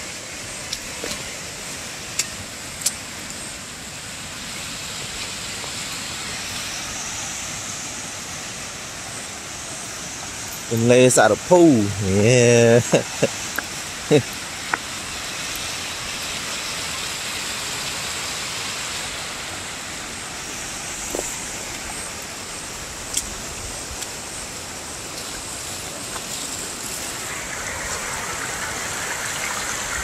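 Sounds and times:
river water rushing over rocks: 0.0s - 30.0s.

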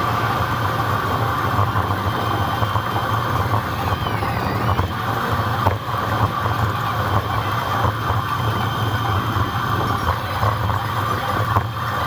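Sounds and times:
bicycle road rumble: 0.0s - 12.0s.

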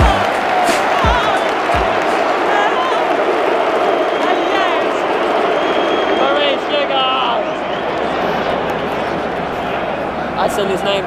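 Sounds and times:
stadium crowd chanting and shouting: 0.0s - 11.0s.

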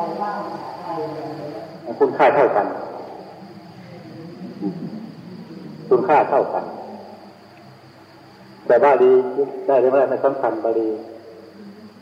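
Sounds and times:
faint low voice murmuring: 0.0s - 7.9s, 9.4s - 12.0s
steady high-pitched whine: 0.0s - 12.0s
man speaking: 1.9s - 3.0s, 5.8s - 7.1s, 8.7s - 11.1s.

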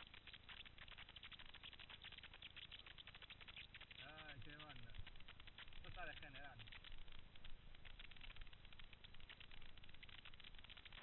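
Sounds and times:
bike tyres rattling on stones: 4.0s - 11.0s.

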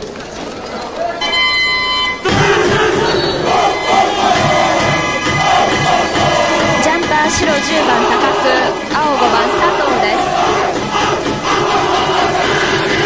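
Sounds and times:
crowd noise: 0.0s - 13.0s
cheer squad chanting in unison: 2.2s - 13.0s
low regular drum beats: 2.2s - 13.0s.

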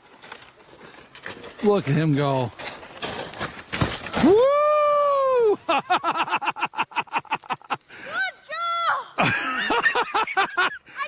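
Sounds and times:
child yelling: 8.0s - 9.2s.

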